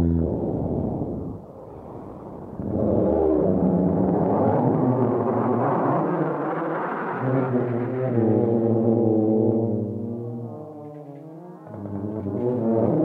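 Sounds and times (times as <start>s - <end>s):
tuba playing low notes: 11.7s - 13.0s.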